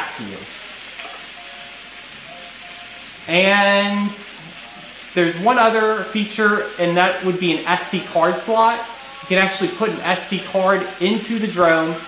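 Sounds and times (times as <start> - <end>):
food sizzling in a pan: 0.0 - 12.0.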